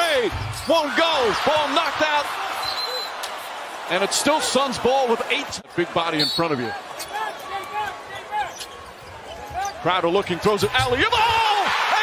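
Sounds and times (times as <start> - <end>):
shoes squeaking on court: 6.2 - 9.9.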